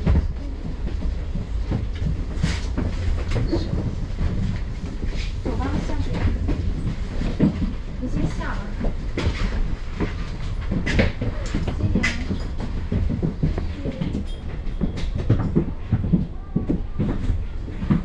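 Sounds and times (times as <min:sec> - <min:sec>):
bodywork rattling and knocking: 0:00.0 - 0:18.0.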